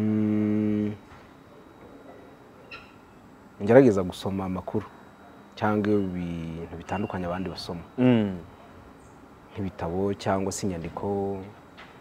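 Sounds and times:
man humming: 0.0 - 1.1, 8.0 - 8.5.

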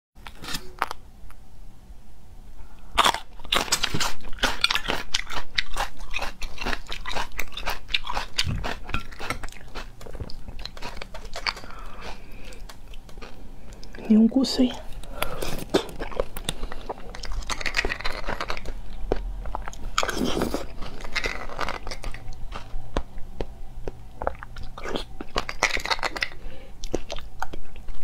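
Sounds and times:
chewing crunchy chili pepper: 2.8 - 14.1, 14.8 - 28.0.

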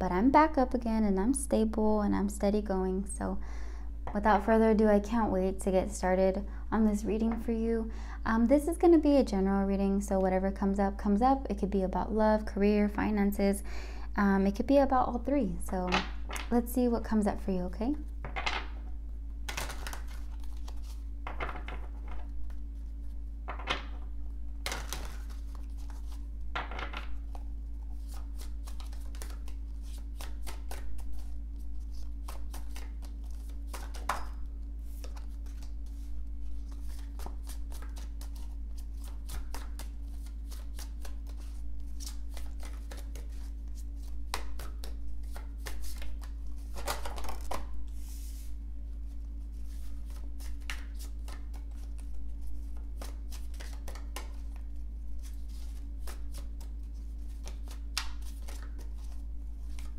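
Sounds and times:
steady low hum: 0.0 - 59.9
cards laid on wooden table: 18.2 - 18.7, 23.5 - 24.0, 26.6 - 27.1
cards being shuffled: 19.5 - 59.9.

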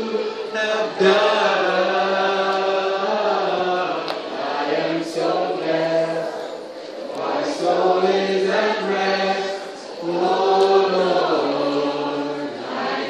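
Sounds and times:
group singing worship song: 0.0 - 13.0.

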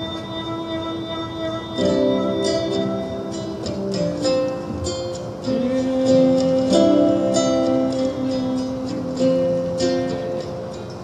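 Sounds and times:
acoustic guitar chords ringing: 0.0 - 11.0.

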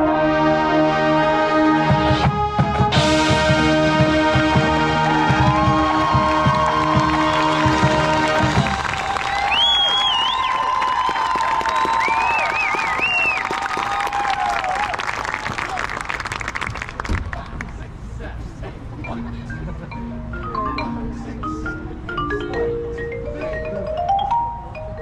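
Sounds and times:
marching band sustained chord: 0.0 - 9.2
crowd cheering and applauding: 4.3 - 17.5
shrill whistles: 9.1 - 13.6.

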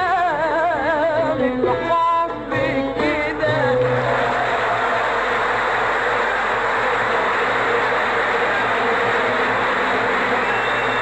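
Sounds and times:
large audience applauding: 3.8 - 11.0.

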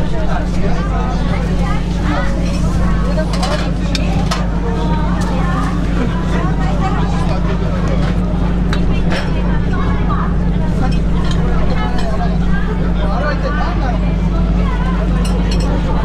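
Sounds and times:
chatter of many voices: 0.0 - 16.0.

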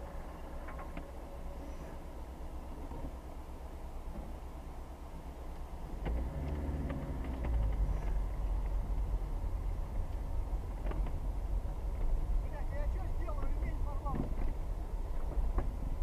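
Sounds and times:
moving car rumble: 0.0 - 16.0.

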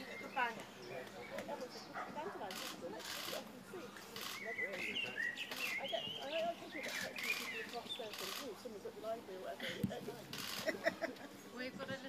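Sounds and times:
quiet conversation: 0.0 - 12.0.

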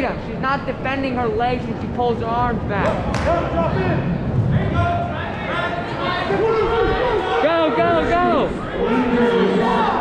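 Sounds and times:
crowd chatter: 0.0 - 10.0
people shouting encouragement: 4.7 - 10.0.

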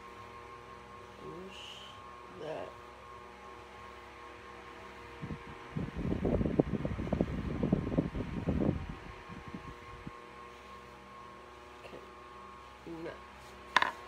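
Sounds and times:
electric fan humming: 0.0 - 14.0.

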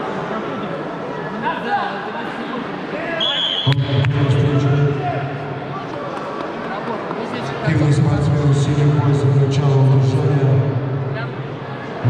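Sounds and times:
indistinct voices and chatter echoing: 0.0 - 12.0.

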